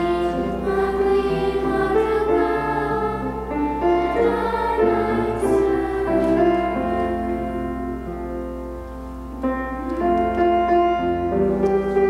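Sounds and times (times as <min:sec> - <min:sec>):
children's choir singing: 0:00.0 - 0:08.0
piano accompaniment: 0:00.0 - 0:12.0.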